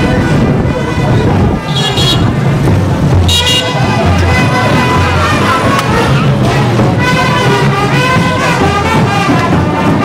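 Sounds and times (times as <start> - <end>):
vehicle horn toots: 0.8 - 2.4, 3.2 - 5.8.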